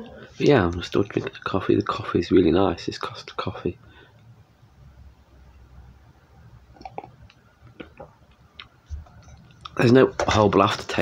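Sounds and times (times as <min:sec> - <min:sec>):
sipping and swallowing coffee: 0:06.7 - 0:08.0.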